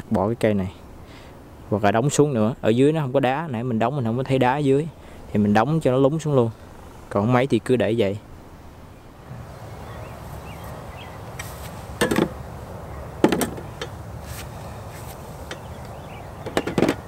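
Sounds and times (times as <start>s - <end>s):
low outdoor hum: 0.0s - 17.0s
plastic tool case clunks and clicks: 12.0s - 12.4s, 13.2s - 13.9s, 16.4s - 17.0s.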